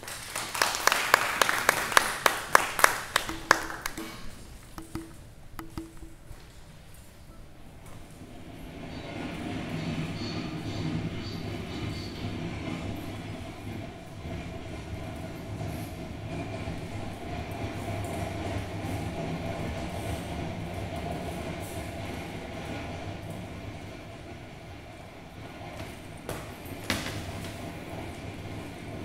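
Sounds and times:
subway train rumble through speakers: 0.0s - 29.0s.

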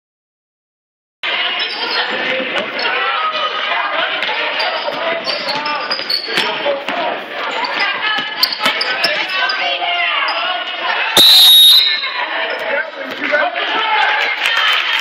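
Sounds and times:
crowd and player chatter: 1.2s - 15.0s
referee's whistle blast: 11.2s - 12.2s.

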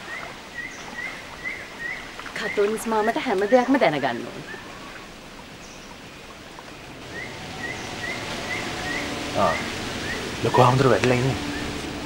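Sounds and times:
bird chirping: 0.0s - 11.9s
outdoor noise wash: 0.0s - 12.0s.

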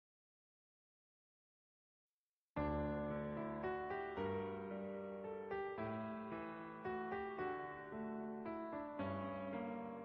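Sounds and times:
soft piano-like keyboard: 2.6s - 10.0s.

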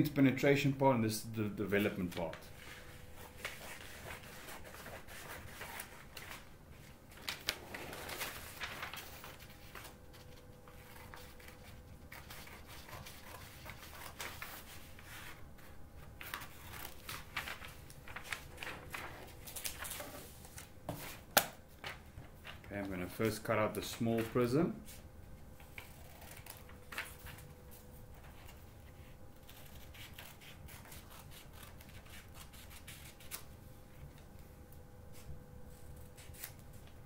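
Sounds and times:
paper sheets rustling: 1.7s - 33.5s.

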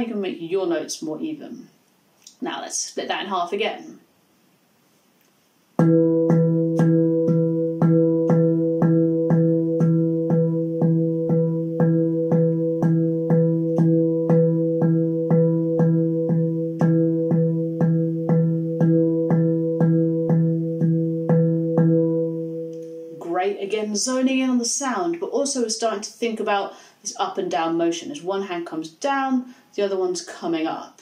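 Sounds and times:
handpan note roll: 5.8s - 23.2s.

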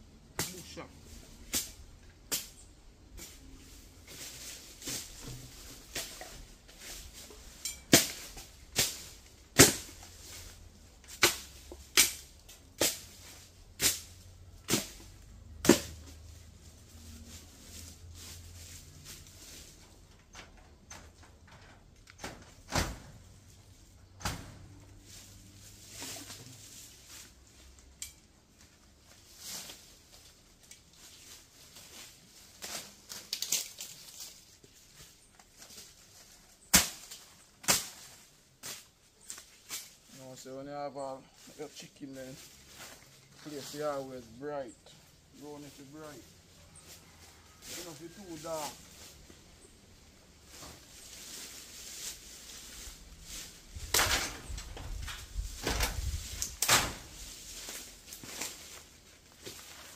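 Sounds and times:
hand tool chopping bush: 0.4s - 0.8s, 1.4s - 2.6s, 4.1s - 16.3s, 36.6s - 40.0s.

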